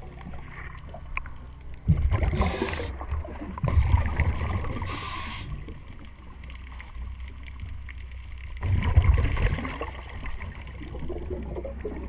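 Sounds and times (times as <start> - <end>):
exhaled bubbles rumbling: 0.0 - 12.0
diver inhaling through regulator: 2.2 - 3.0, 4.8 - 5.6.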